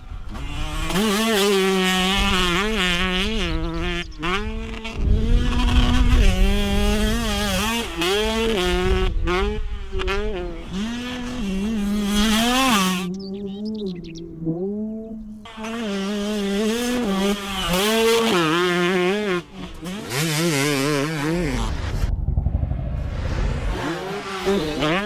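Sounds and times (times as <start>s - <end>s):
wind rumbling on microphone: 1.9s - 12.6s, 21.2s - 24.1s.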